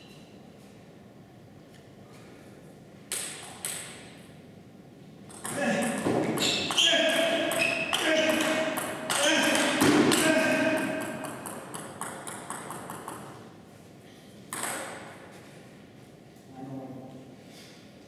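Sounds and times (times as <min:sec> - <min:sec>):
table tennis ball clicking: 0:11.2 - 0:13.4.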